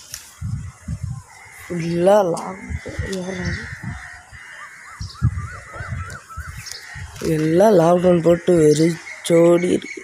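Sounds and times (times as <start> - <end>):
bird calling: 0.2 - 10.0.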